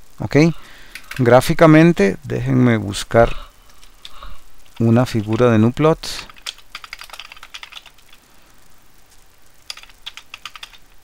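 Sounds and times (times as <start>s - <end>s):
typing on keyboard: 0.9s - 1.2s, 6.3s - 8.2s, 9.7s - 10.9s.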